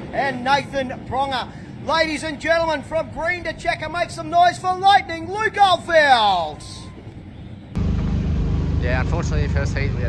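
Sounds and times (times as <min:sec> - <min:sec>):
racing car engines droning: 0:06.5 - 0:10.0
man speaking: 0:08.8 - 0:10.0.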